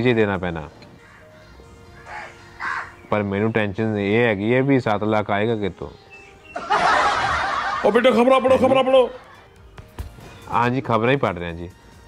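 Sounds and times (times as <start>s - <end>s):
burst of laughter: 6.6s - 7.9s.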